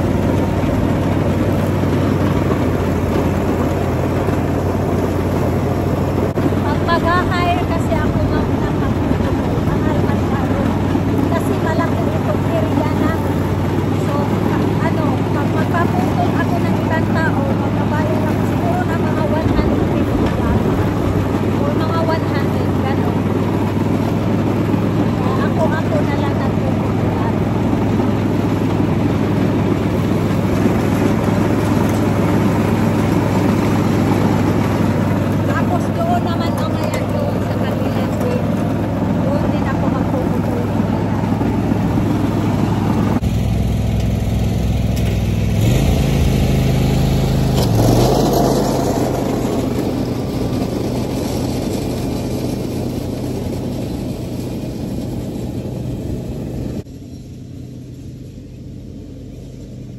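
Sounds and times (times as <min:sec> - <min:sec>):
riding lawn mower engine running: 0:00.0 - 0:59.9.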